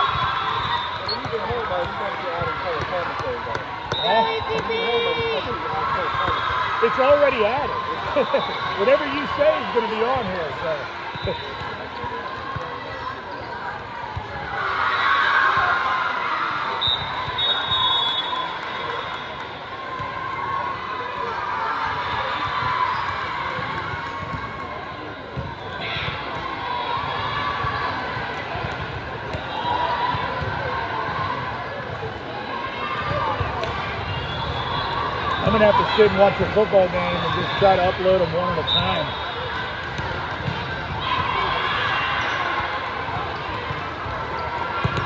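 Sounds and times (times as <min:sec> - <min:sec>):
voices chattering and calling: 0:00.6 - 0:13.9.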